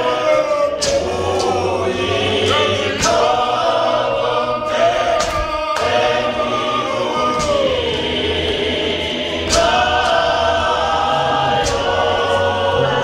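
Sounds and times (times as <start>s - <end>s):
congregation singing a hymn: 0.0s - 13.0s.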